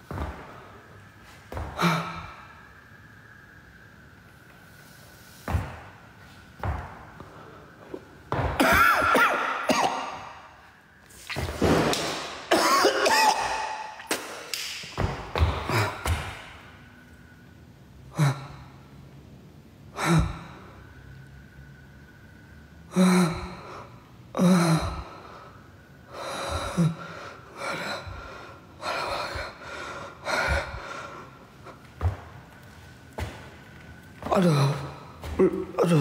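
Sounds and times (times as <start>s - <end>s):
person gasping and groaning: 24.4s - 25.3s, 34.2s - 36.0s.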